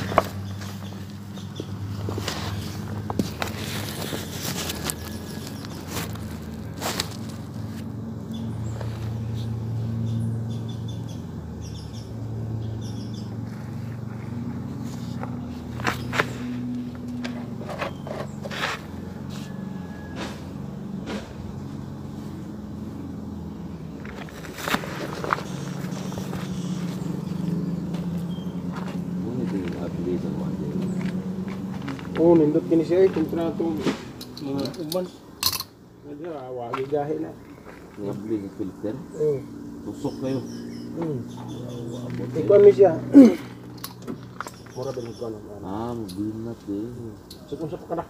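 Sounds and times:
car engine idling: 0.0 - 19.8, 20.4 - 48.0.

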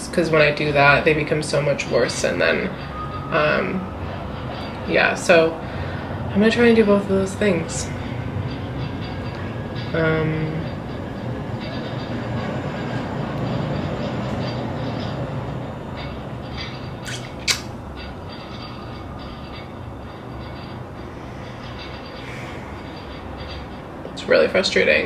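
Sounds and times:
low rumbling background noise: 0.0 - 25.0
sharp click: 17.0 - 17.8.

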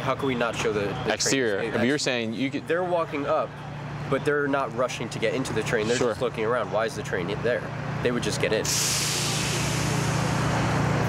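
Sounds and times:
vehicle rumble: 0.0 - 11.0
hiss: 8.6 - 10.8.

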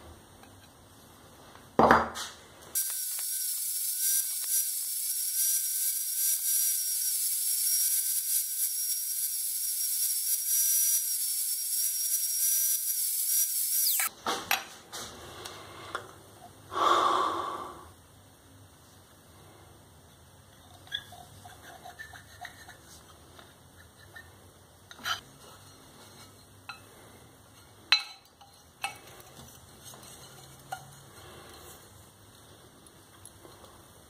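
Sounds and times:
angle grinder whining: 2.8 - 14.1
grinder disc spinning down: 2.8 - 14.1.

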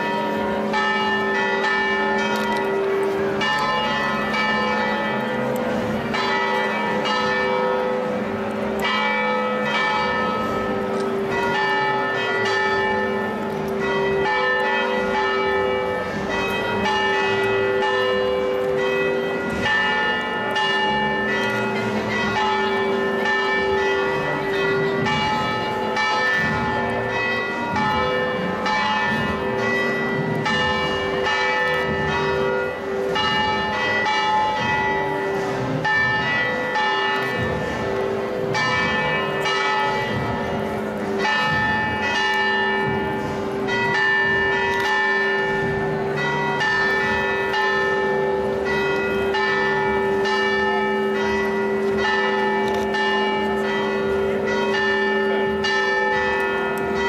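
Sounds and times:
church bells ringing: 0.0 - 57.0.

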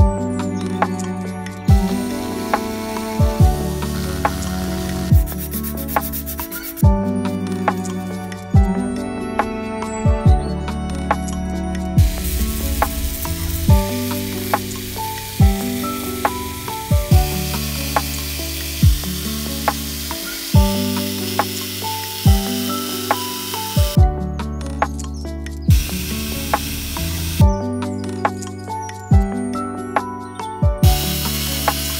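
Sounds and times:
music with steady beat: 0.0 - 31.9
rotary tool grinding plastic: 17.3 - 23.9.

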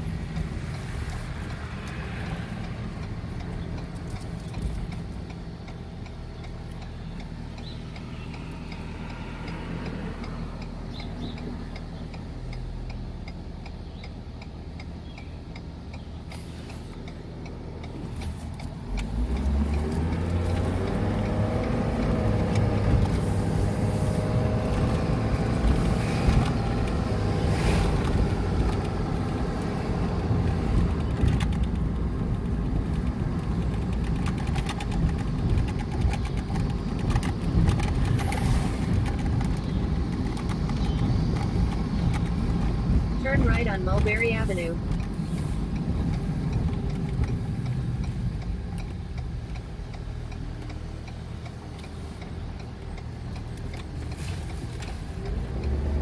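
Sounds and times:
vehicle engine accelerating: 0.0 - 15.0, 15.8 - 56.0
road noise while driving: 0.0 - 56.0.

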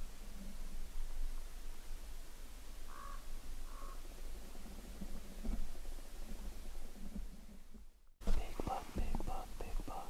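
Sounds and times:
bird calling: 2.9 - 4.0.

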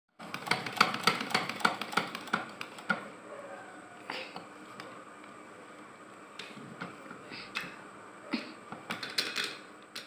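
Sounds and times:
sewing machine clicking: 0.2 - 3.0.

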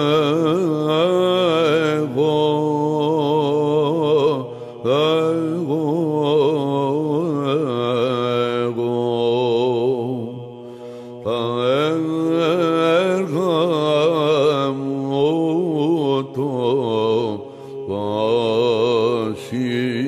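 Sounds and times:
man chanting ornamented melody: 0.0 - 10.6, 11.2 - 20.0
held vocal drone: 0.0 - 20.0.

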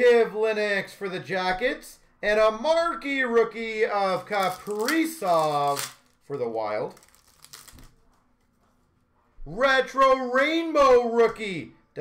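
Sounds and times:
trading cards rustling: 4.1 - 8.5
soft card crinkles: 4.1 - 8.9.

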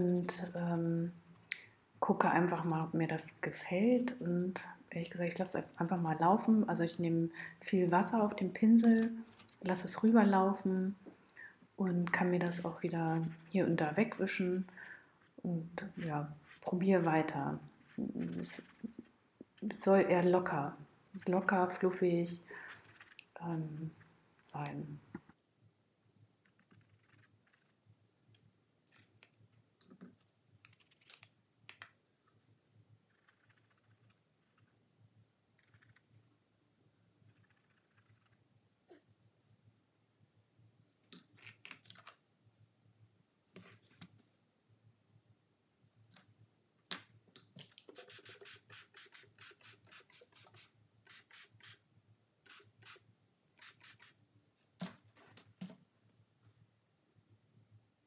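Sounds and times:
paintbrush scrubbing on canvas: 0.0 - 0.8, 15.9 - 19.1, 47.9 - 51.8, 53.6 - 54.2.

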